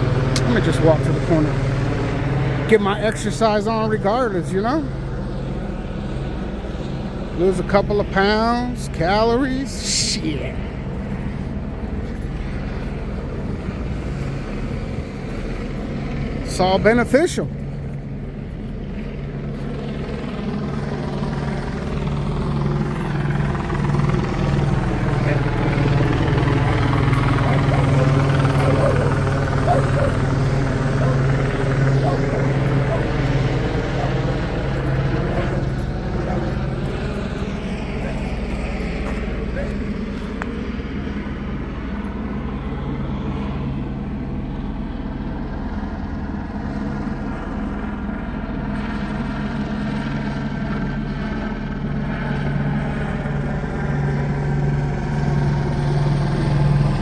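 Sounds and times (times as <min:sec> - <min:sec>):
helicopter rotor drone: 0:00.0 - 0:57.0.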